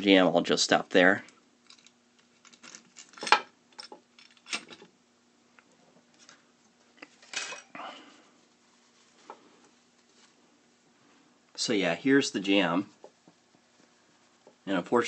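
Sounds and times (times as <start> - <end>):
small metal parts clinking: 1.6 - 4.9
rustle of handling: 6.0 - 11.3, 12.0 - 15.0.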